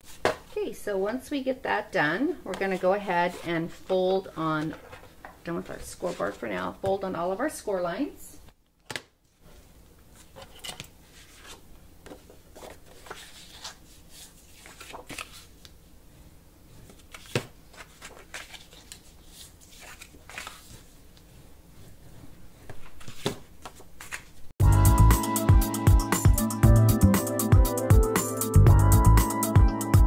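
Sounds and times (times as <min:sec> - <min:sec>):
cardstock rustling and sliding: 0:09.5 - 0:15.5, 0:16.8 - 0:24.4.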